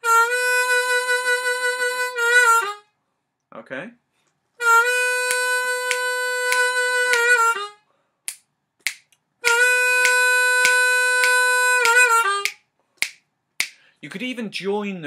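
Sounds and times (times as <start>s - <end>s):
harmonica playing blues: 0.0s - 2.9s, 4.6s - 7.8s, 9.4s - 12.6s.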